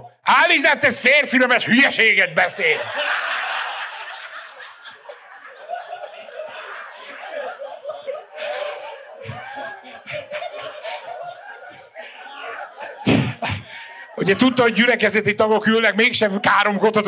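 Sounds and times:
crowd laughing: 1.4 - 17.0.

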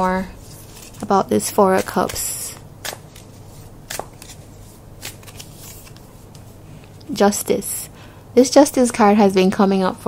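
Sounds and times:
cards shuffling: 0.4 - 6.5.

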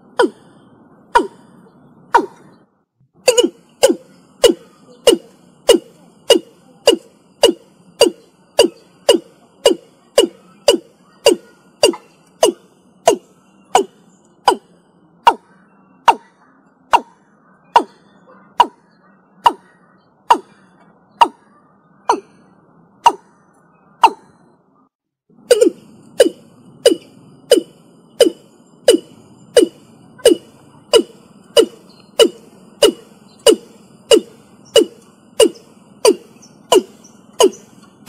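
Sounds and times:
bird calling descending notes: 0.0 - 24.8, 25.4 - 38.0.

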